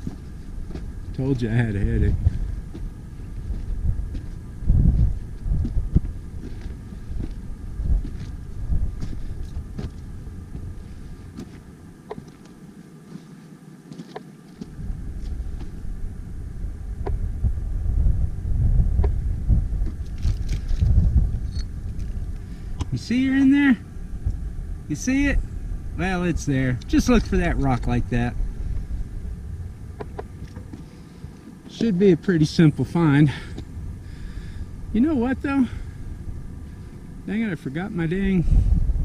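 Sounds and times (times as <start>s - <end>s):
wind buffeting microphone: 0.0s - 12.7s, 14.6s - 39.0s
footsteps on rocky ground: 0.0s - 15.8s, 19.8s - 23.5s, 33.4s - 33.7s.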